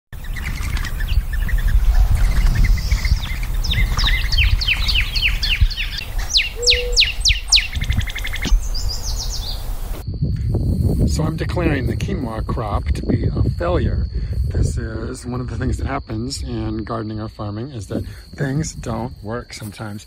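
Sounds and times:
birds chirping: 0.1s - 10.0s
high rapid bird trill: 0.2s - 9.8s
low rumble: 0.3s - 19.4s.

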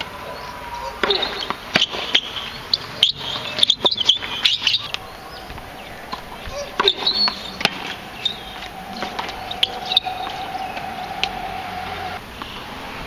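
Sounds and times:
birds chirping: 0.0s - 13.0s
racket striking tennis ball: 0.9s - 2.5s, 5.5s - 9.6s
ball bouncing on hard court: 1.0s - 2.3s.

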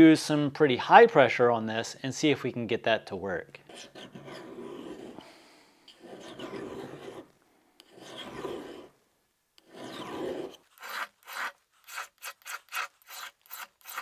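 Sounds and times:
knife scraping on honing rod: 3.7s - 5.2s, 5.9s - 8.9s, 9.6s - 14.0s.

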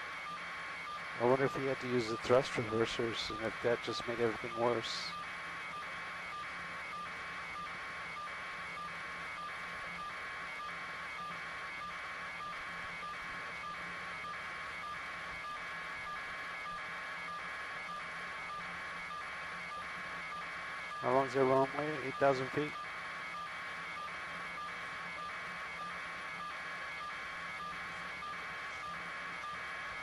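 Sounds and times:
electronic pulsing signal: 0.0s - 30.0s.

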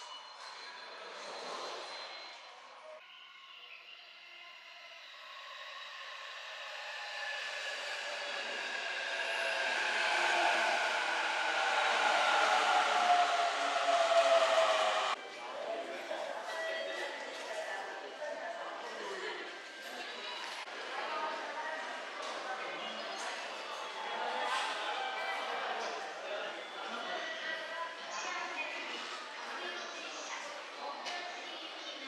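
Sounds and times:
electric train motor whine: 5.2s - 15.2s.

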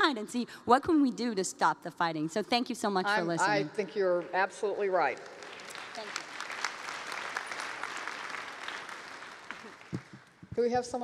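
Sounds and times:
audience applauding: 5.0s - 10.5s.

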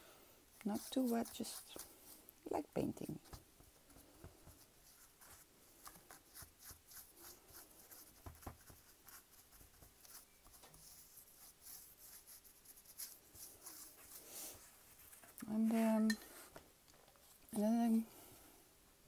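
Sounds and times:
paintbrush scratching on wood: 0.5s - 2.2s, 2.8s - 16.0s.

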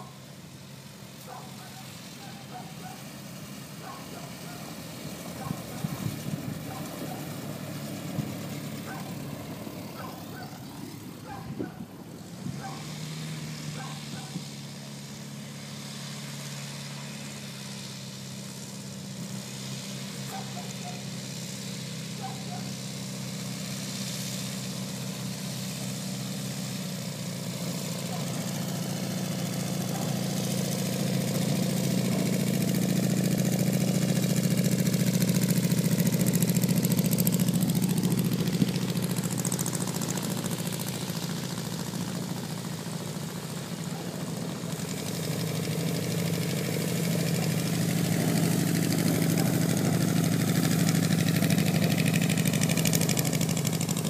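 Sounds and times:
engine running: 0.0s - 54.0s.

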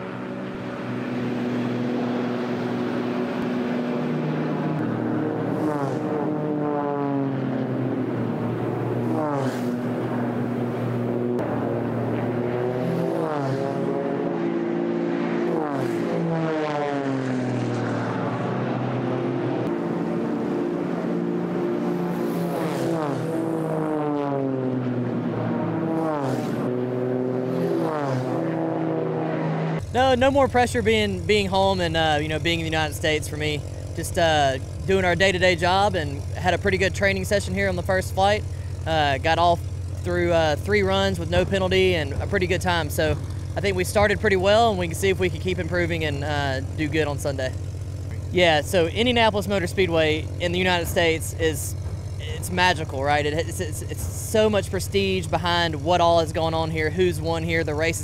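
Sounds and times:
propeller plane engine: 0.0s - 58.0s.

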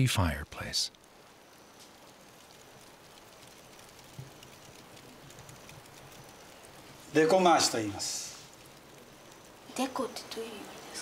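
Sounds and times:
hearth crackling and sizzling: 0.0s - 11.0s.

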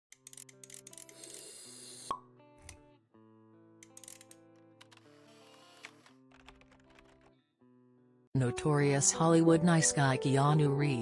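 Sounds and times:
small clicks: 3.8s - 7.3s.

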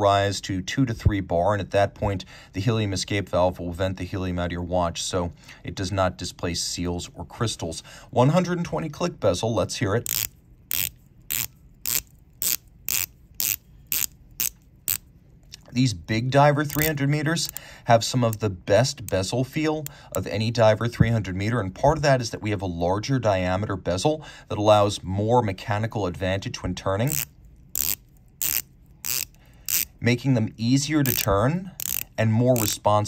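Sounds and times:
watch bezel ratcheting clicks: 10.0s - 15.1s, 16.6s - 17.6s, 27.0s - 30.0s, 31.0s - 32.8s.

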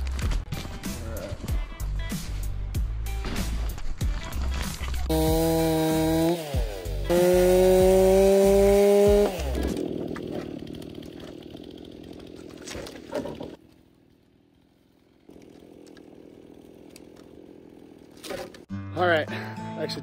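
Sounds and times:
chainsaw cutting log: 3.7s - 18.7s.

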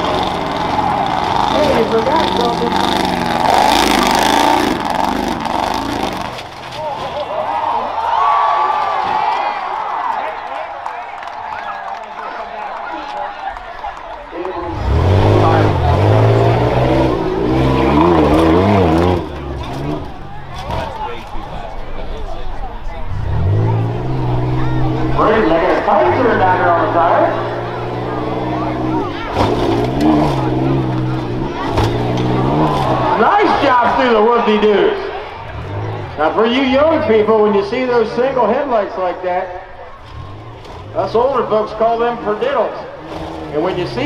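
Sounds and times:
truck engine revving hard: 0.0s - 6.8s, 14.4s - 21.3s, 22.9s - 44.0s.

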